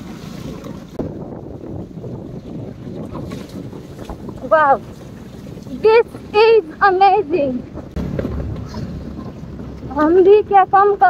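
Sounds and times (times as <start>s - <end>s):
wind buffeting microphone: 0.0s - 11.0s
motorcycle rumbling on gravel: 7.3s - 10.7s.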